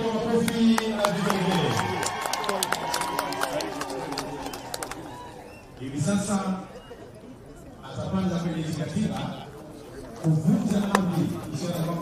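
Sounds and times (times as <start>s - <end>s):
crowd talking: 0.0s - 12.0s.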